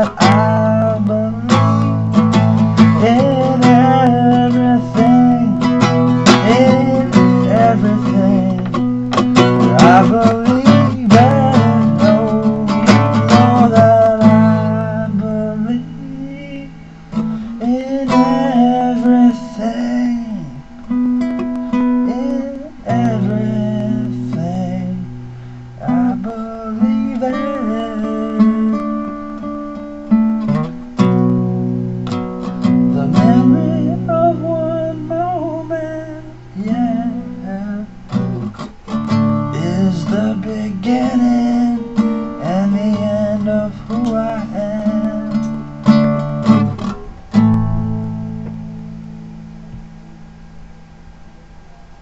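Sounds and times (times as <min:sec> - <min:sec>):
acoustic guitar strumming: 0:00.0 - 0:52.0.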